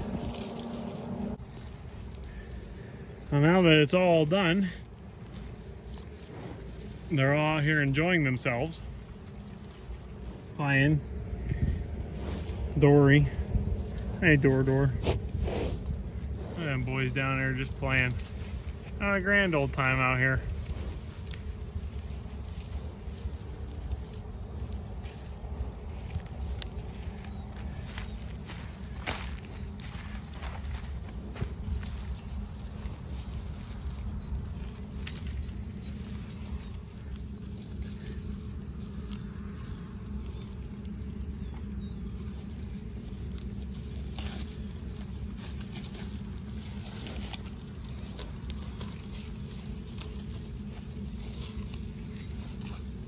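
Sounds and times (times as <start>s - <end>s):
corn stalks crackling and rustling: 0.0s - 53.0s
steady low rumble: 0.0s - 53.0s.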